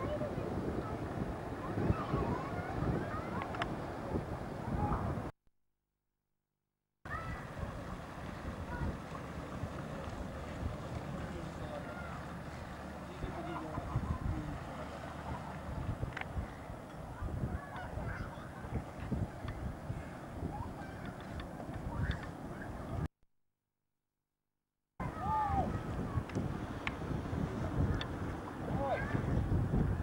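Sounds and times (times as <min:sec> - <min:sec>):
wind rumbling on microphone: 0:00.0 - 0:05.3, 0:07.1 - 0:23.1, 0:25.0 - 0:30.0.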